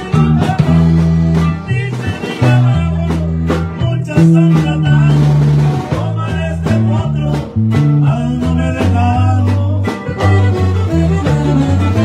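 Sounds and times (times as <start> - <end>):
bass line: 0.0 - 12.0
button accordion melody: 0.0 - 12.0
strummed guitar: 0.0 - 12.0.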